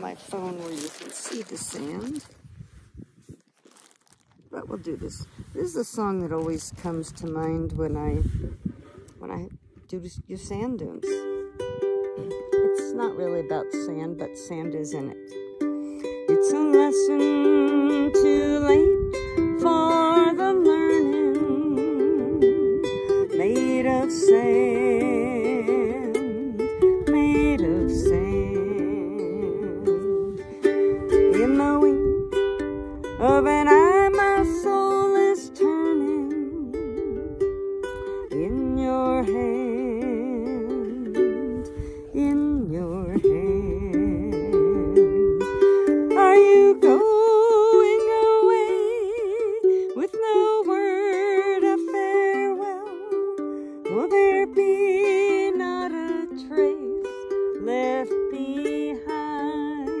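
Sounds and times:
ukulele: 0:00.0 - 1:00.0
woman singing folk ballad: 0:16.1 - 0:32.4, 0:33.1 - 1:00.0.

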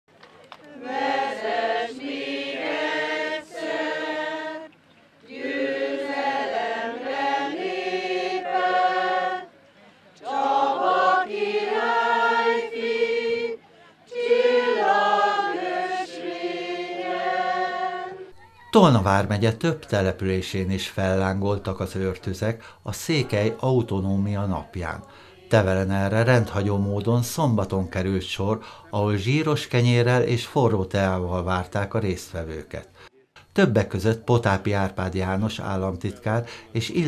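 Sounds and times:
group singing outdoors: 0:00.1 - 0:37.0.

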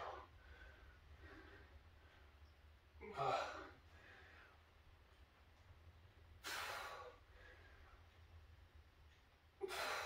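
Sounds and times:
man breathing hard: 0:00.0 - 0:02.2, 0:03.0 - 0:04.7, 0:06.4 - 0:08.0, 0:09.6 - 0:10.0.

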